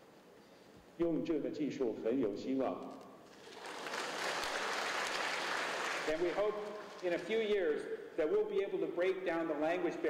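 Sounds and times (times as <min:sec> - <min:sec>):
audience applause: 0:03.4 - 0:07.0.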